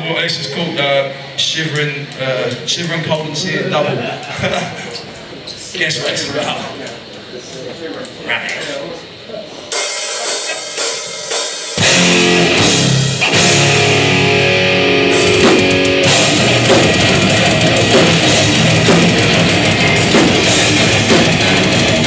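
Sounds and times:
distorted electric guitars: 0:09.1 - 0:22.0
metal band playing: 0:09.6 - 0:22.0
pounding drum kit: 0:09.6 - 0:22.0.

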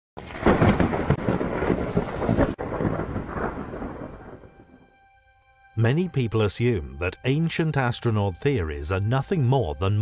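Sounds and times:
rain: 0:00.2 - 0:04.6
thunder rumbling: 0:00.2 - 0:05.0.

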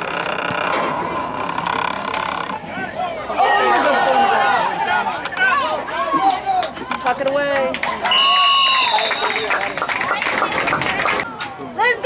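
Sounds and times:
crowd clapping and cheering: 0:07.4 - 0:11.5
referee's whistle: 0:08.1 - 0:09.8.

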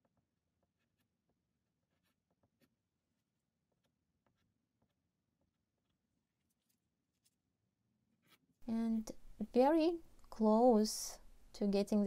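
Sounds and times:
pastel scratching on paper: 0:00.6 - 0:06.9.

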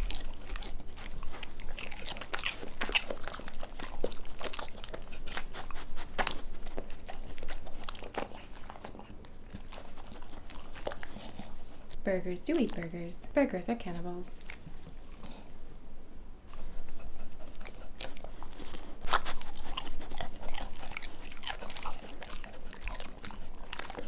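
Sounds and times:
dogs chewing and lip-smacking: 0:00.0 - 0:15.7, 0:16.4 - 0:24.0.

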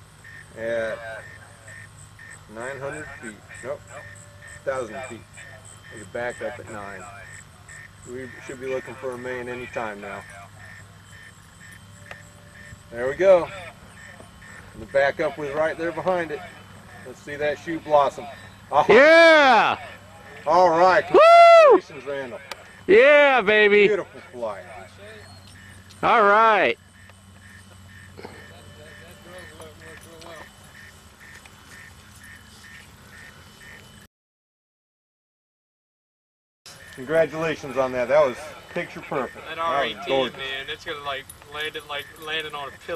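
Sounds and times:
faint electronic beeping: 0:00.0 - 0:21.2, 0:21.8 - 0:34.1, 0:36.7 - 0:42.9
distant voice: 0:00.2 - 0:34.0, 0:36.8 - 0:42.9.

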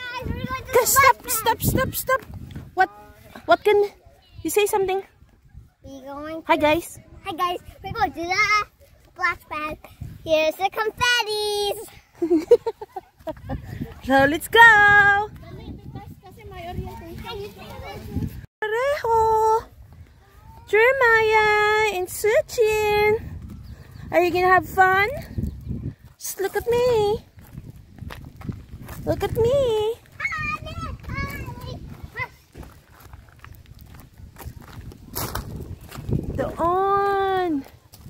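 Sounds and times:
wind on microphone: 0:00.0 - 0:03.0, 0:09.7 - 0:11.1, 0:13.2 - 0:18.5, 0:19.1 - 0:38.0
children chattering and calling: 0:00.0 - 0:27.4, 0:28.9 - 0:38.0
footsteps on gravel: 0:26.0 - 0:38.0.

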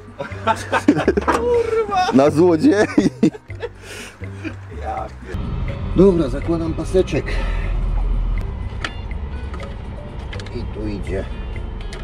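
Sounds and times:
steady low rumble: 0:04.2 - 0:12.0.

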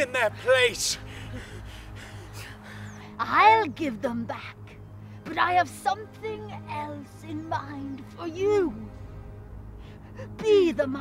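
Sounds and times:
low droning film score: 0:00.0 - 0:11.0.

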